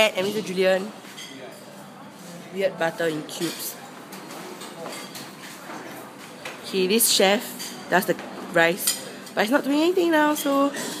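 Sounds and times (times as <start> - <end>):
faint distant chatter: 0.0 - 11.0
room noise: 0.0 - 11.0.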